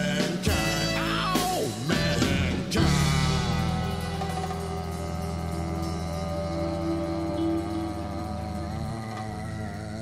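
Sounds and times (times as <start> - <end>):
jazz ensemble playing held notes: 0.0 - 9.4
low drone: 2.7 - 10.0.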